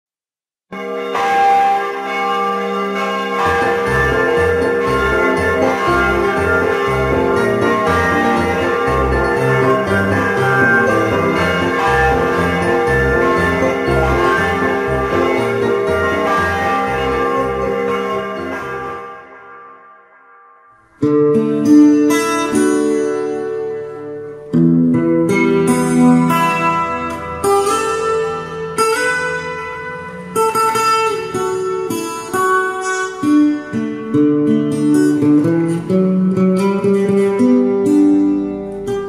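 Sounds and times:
large church bell ringing: 0.7 - 24.5, 25.2 - 33.9.

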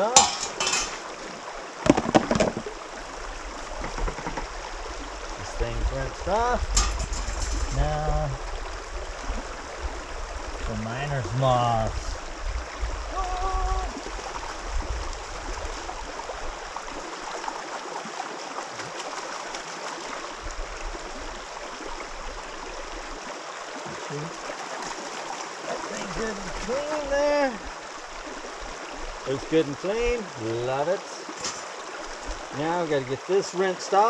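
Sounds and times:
river flowing over gravel: 0.0 - 34.0
water sloshing in a bucket: 23.8 - 28.6.

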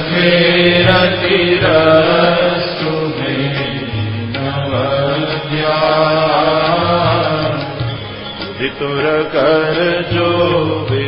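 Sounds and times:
instrumental drone: 0.0 - 11.0.

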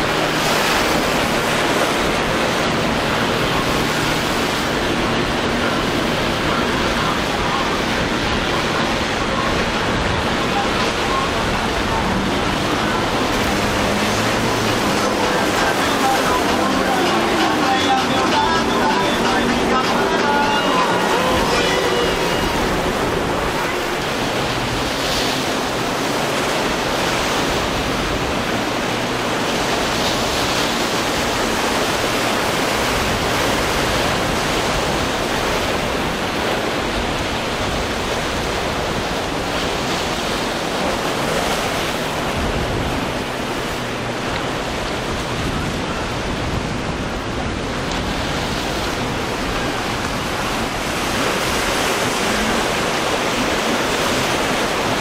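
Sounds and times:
rough surf: 0.0 - 55.0
wind: 0.0 - 55.0.

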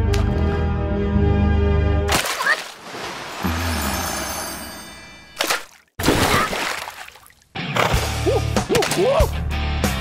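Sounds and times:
bell-like metallic ringing: 3.5 - 5.4.

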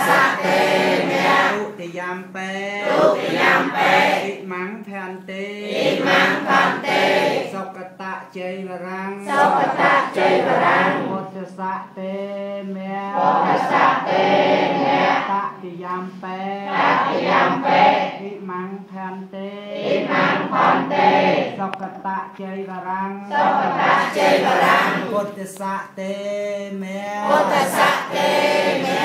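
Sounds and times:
group chanting in unison: 0.0 - 2.0, 2.7 - 4.5, 5.4 - 7.8, 9.2 - 18.4, 19.3 - 22.0, 23.2 - 25.6, 26.8 - 29.0.

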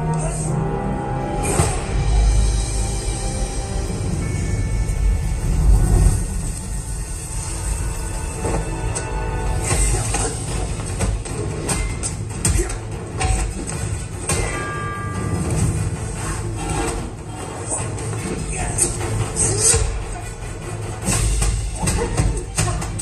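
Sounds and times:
film music with deep bass: 0.0 - 23.0.

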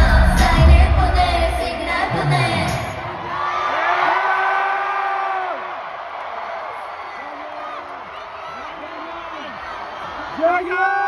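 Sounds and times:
song over speakers: 0.0 - 3.3
crowd cheering: 2.4 - 11.0.

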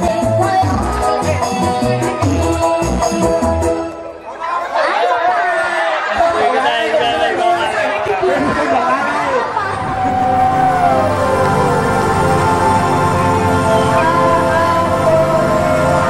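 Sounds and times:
music: 0.0 - 4.3, 9.5 - 16.0
people talking excitedly: 4.0 - 12.6.

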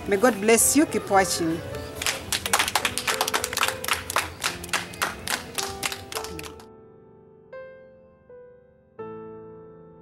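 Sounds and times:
background music: 0.0 - 10.0
children clapping: 2.0 - 6.7.

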